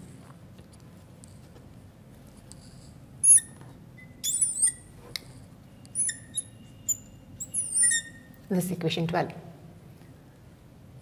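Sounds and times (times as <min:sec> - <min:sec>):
marker squeaking on board: 0:03.2 - 0:03.6, 0:04.2 - 0:04.9, 0:05.9 - 0:08.3.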